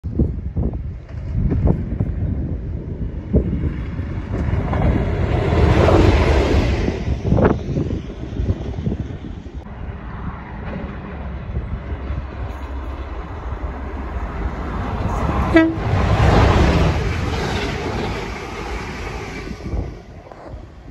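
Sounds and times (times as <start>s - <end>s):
wind buffeting microphone: 0.0s - 20.9s
diesel locomotive rumbling: 0.1s - 20.9s.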